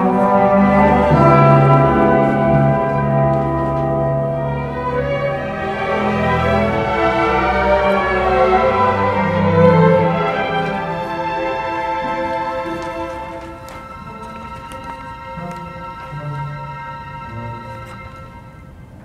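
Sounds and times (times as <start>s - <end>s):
symphony orchestra playing: 0.0s - 19.0s.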